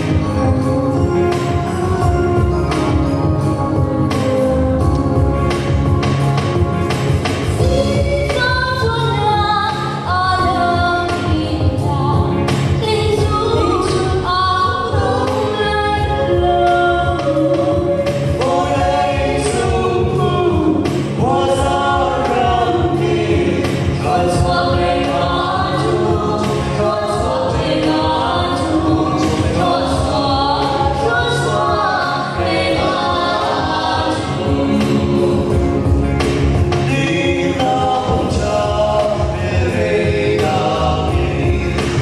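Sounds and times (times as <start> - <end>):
choir singing: 13.4 - 36.1, 36.8 - 42.0.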